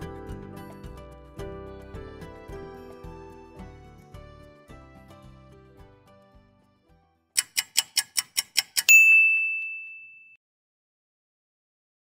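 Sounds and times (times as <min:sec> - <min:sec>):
quick ticks: 0:07.4 - 0:08.9
bright ding: 0:08.8 - 0:10.4.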